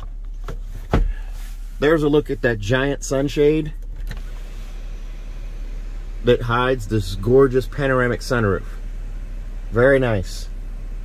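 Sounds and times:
low cabin hum: 0:00.0 - 0:11.0.

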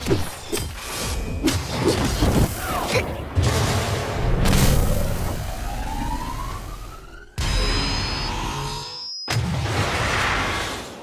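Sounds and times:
whine rising in pitch: 0:05.0 - 0:08.9.

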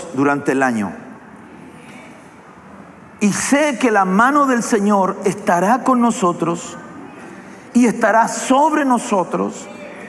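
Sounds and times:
large hall room noise: 0:00.0 - 0:10.0.

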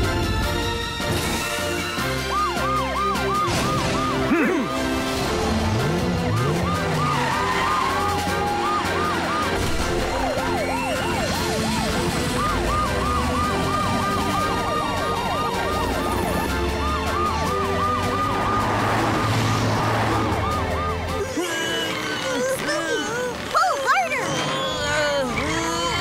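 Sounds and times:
background music: 0:00.0 - 0:26.0
cartoon sirens yelping: 0:02.2 - 0:05.0, 0:05.7 - 0:26.0.

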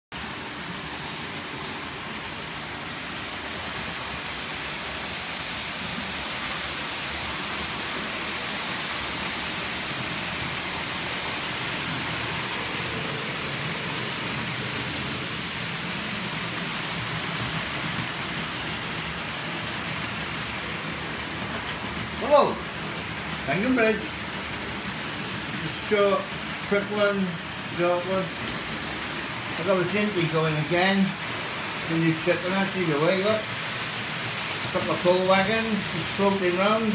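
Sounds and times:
model train motor hum: 0:00.2 - 0:36.9
model train wheels rolling: 0:00.2 - 0:36.9.

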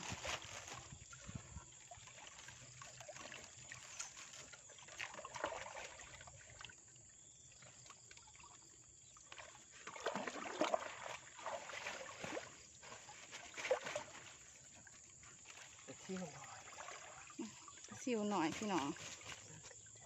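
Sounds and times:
wet net rustling: 0:00.0 - 0:06.2, 0:09.9 - 0:19.7
water trickling and splashing: 0:00.0 - 0:20.0.

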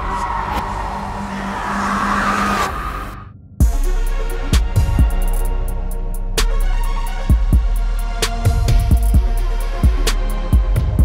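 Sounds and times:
noisy screech with high tone: 0:00.0 - 0:03.3.

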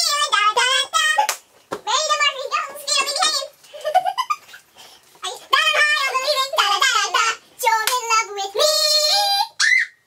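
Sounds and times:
girl singing a long note: 0:05.6 - 0:09.6.

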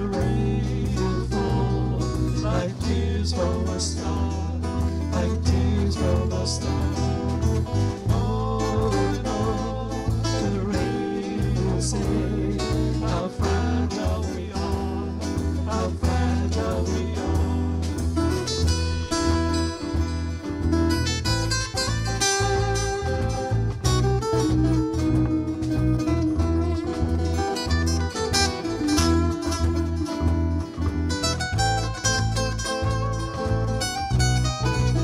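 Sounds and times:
acoustic guitar: 0:00.0 - 0:35.0
bass guitar: 0:00.0 - 0:35.0
drums: 0:00.0 - 0:35.0
electric guitar: 0:00.0 - 0:35.0.

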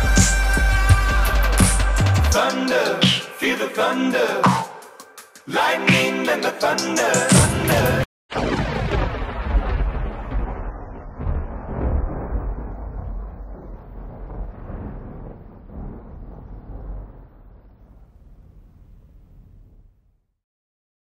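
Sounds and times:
thunder rumble: 0:08.3 - 0:20.3.

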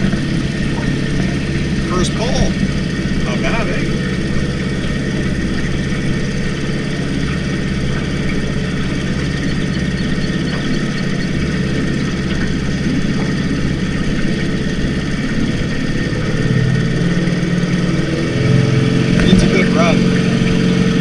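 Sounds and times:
outboard motor running: 0:00.0 - 0:21.0.

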